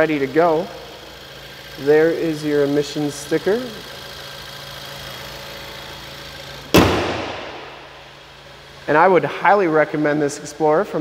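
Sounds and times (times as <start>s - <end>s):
car engine idling: 0.0s - 9.1s
car hood slamming shut: 6.7s - 8.0s.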